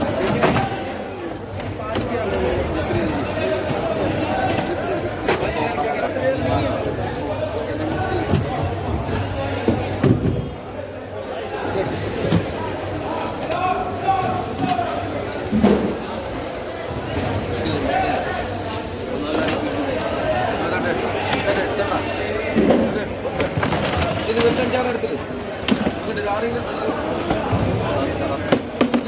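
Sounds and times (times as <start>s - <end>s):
chatter of voices: 0.0s - 29.0s.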